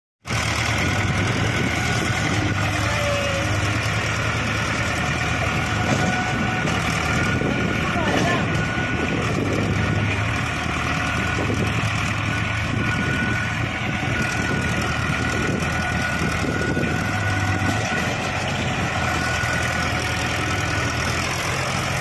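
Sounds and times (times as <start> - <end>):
tractor diesel engine under load: 0.2 - 22.0.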